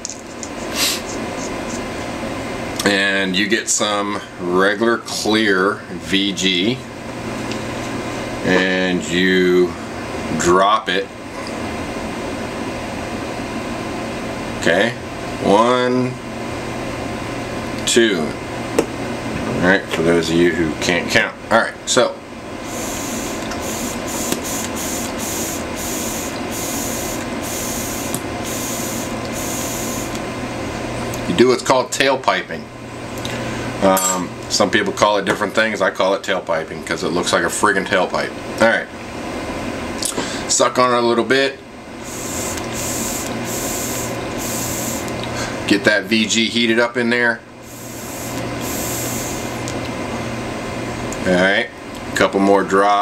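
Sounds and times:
e-cigarette coil sizzling: 0:22.7 - 0:30.2, 0:42.0 - 0:45.2, 0:47.6 - 0:49.8.

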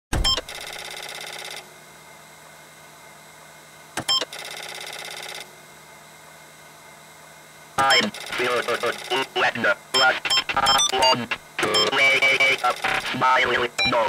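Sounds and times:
sharp electronic click: 0:04.0 - 0:04.7
man speaking: 0:07.8 - 0:10.3, 0:11.0 - 0:14.0.

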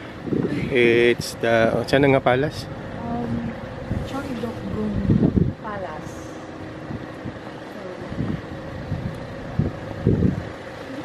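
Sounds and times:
traffic hum: 0:00.0 - 0:11.0.

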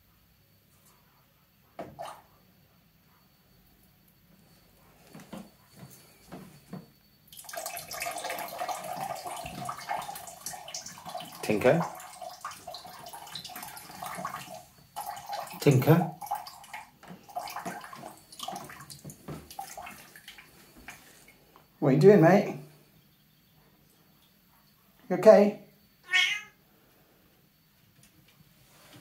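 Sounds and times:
liquid trickling into toilet water: 0:07.2 - 0:21.5
cat meow: 0:26.0 - 0:26.6.

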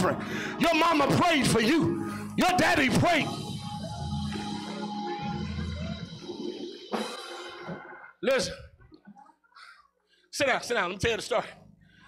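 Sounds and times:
low keyboard chords: 0:00.0 - 0:08.1.

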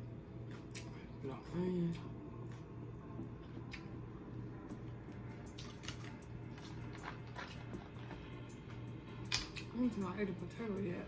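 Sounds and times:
chewing and wet mouth sounds: 0:00.4 - 0:09.8.

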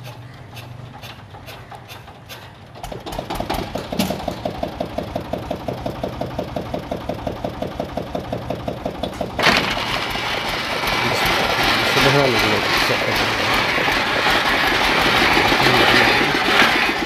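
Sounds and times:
hoist winch engine running: 0:00.0 - 0:17.0
rushing clattering noise: 0:00.8 - 0:17.0.

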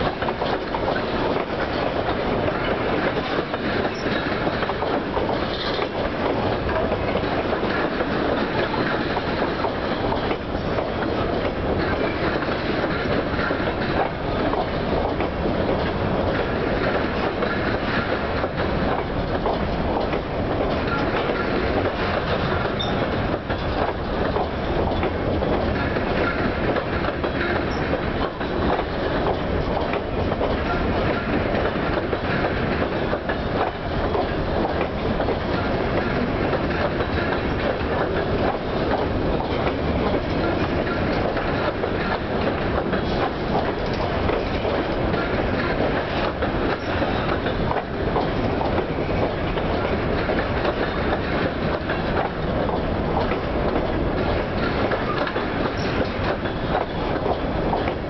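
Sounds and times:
freight train rumble: 0:00.0 - 0:58.0
steel wheels clattering on rails: 0:00.0 - 0:58.0.

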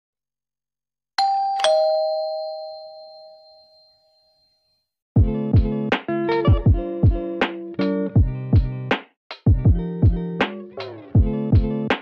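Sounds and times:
two-note ding-dong chime: 0:01.2 - 0:04.7.

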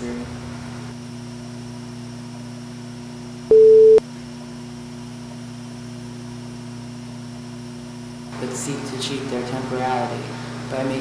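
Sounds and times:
loud pure tone beep: 0:03.5 - 0:04.0
low electronic hum: 0:03.5 - 0:04.0.

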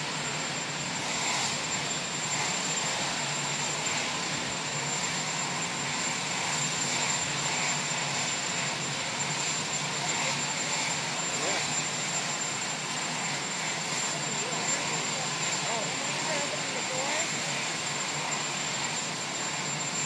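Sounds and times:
aircraft engine noise: 0:00.0 - 0:20.0
faint voices: 0:09.8 - 0:11.8, 0:13.8 - 0:18.2.

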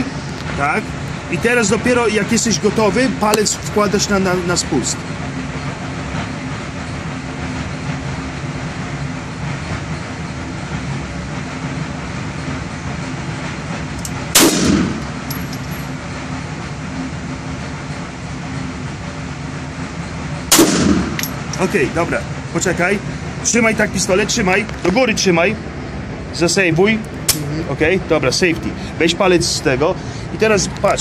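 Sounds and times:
steady hum: 0:00.0 - 0:31.0
pistol shots: 0:14.4 - 0:15.1, 0:20.5 - 0:21.3.

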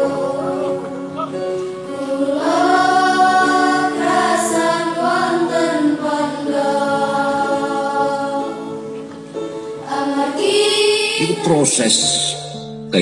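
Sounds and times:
many voices chanting in unison: 0:00.0 - 0:09.1, 0:09.8 - 0:12.4.

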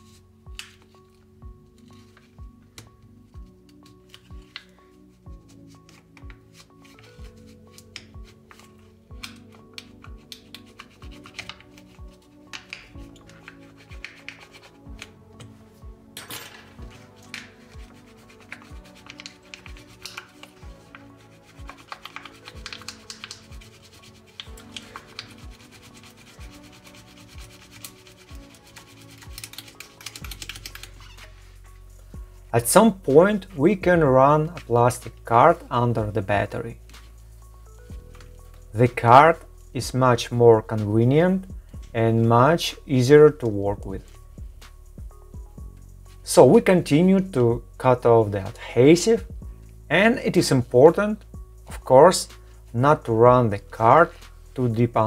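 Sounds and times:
quiet background music: 0:00.0 - 0:55.0.

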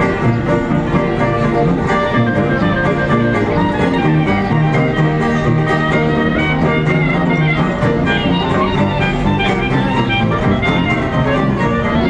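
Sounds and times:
banjo strumming: 0:00.0 - 0:12.0
sousaphone bass notes: 0:00.0 - 0:12.0
trombone: 0:00.0 - 0:12.0.

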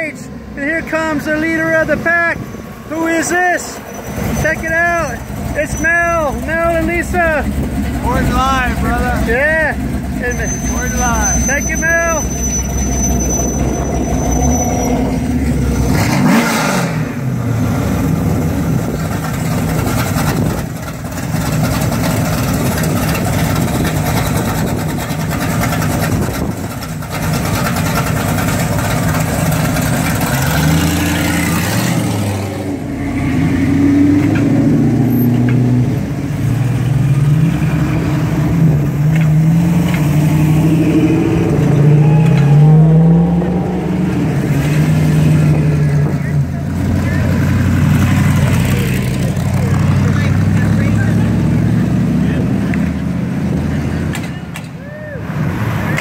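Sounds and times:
cars rolling past: 0:00.0 - 0:56.0
car engine revving: 0:00.6 - 0:54.5.

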